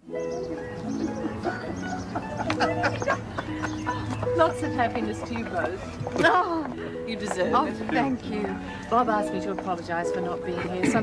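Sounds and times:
music with long held chords: 0:00.0 - 0:11.0.

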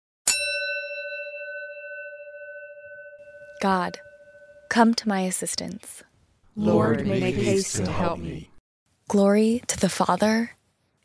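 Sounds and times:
bell ringing: 0:00.3 - 0:04.9.

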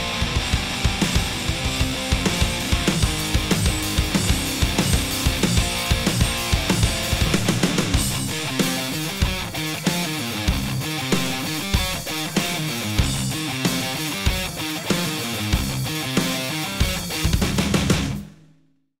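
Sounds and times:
heavy metal music: 0:00.0 - 0:18.4.

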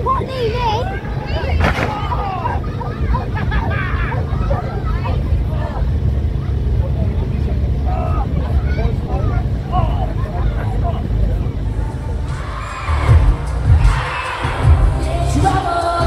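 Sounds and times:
steady low rumble: 0:00.0 - 0:15.8
crowd chatter: 0:00.0 - 0:16.0.

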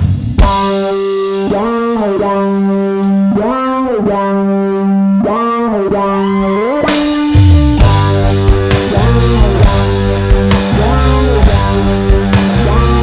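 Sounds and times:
drums and band: 0:00.0 - 0:04.3, 0:05.3 - 0:13.0
electric guitar note bending: 0:00.0 - 0:13.0.

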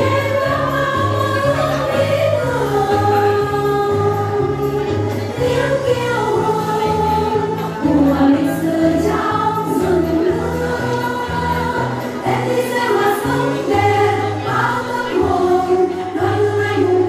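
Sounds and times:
instrumental accompaniment with bass: 0:00.0 - 0:17.0
women singing together: 0:00.0 - 0:17.0.

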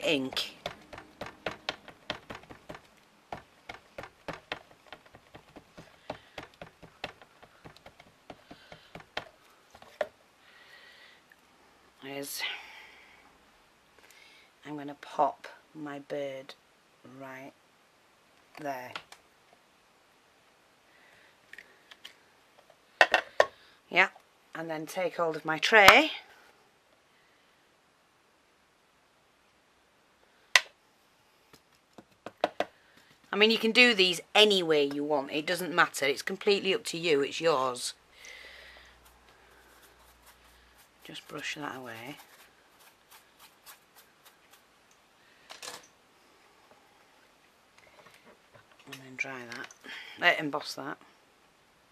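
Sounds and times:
soft brush strokes on board: 0:38.7 - 0:44.9.

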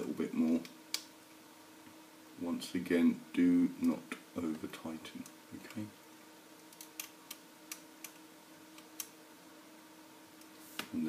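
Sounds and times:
faint steady hum: 0:00.0 - 0:11.0.

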